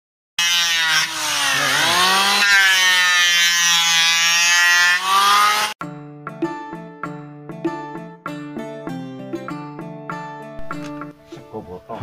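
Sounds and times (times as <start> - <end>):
electric hand planer whining: 0.4 - 5.8.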